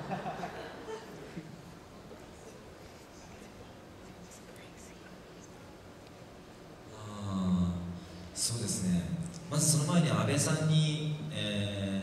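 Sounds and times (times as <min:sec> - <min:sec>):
low hall background: 0:00.0 - 0:12.0
man humming into microphone: 0:06.9 - 0:08.0.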